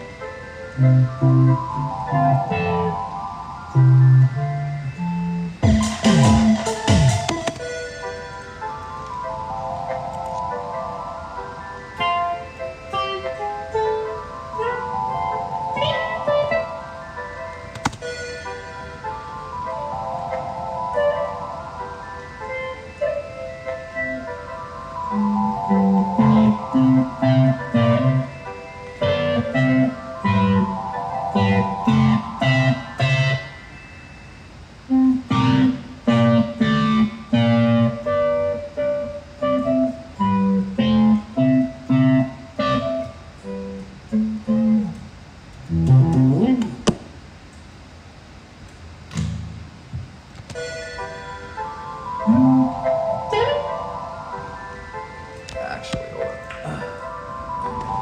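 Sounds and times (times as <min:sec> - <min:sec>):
electric guitar choppy chords: 0:00.0 - 0:33.7, 0:34.8 - 0:47.2, 0:49.1 - 0:58.0
electric guitar single-note melody: 0:00.0 - 0:47.0, 0:50.5 - 0:58.0.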